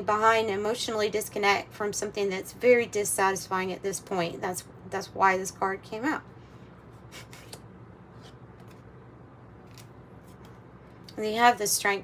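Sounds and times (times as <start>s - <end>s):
tarot cards swishing: 6.9s - 8.9s, 9.6s - 10.6s.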